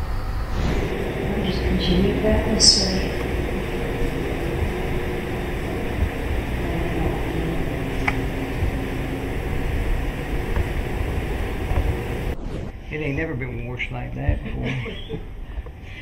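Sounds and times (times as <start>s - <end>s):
steady hiss and low rumble: 0.0s - 15.6s.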